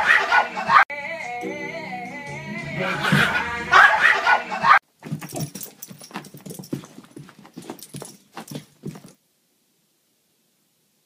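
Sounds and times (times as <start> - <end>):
music with singing: 0.0 - 4.8.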